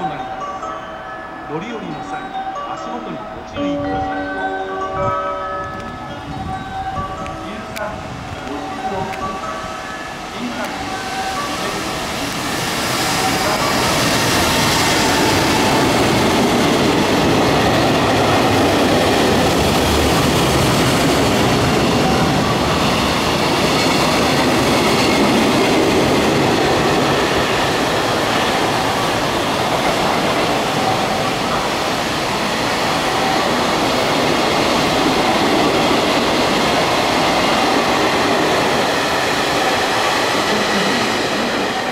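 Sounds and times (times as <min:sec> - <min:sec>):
freight train passing: 0:00.0 - 0:41.9.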